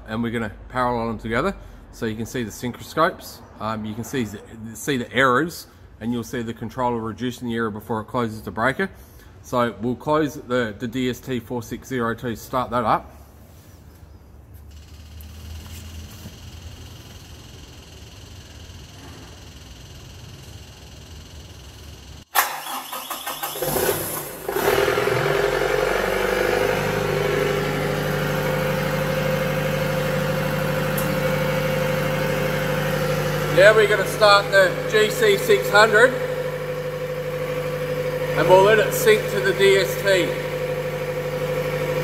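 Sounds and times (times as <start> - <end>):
diesel generator starting and running: 0.0 - 42.0.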